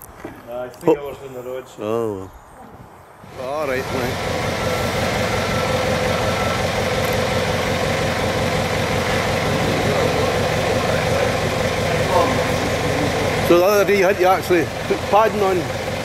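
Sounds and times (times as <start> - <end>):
forklift engine running: 3.2 - 16.0.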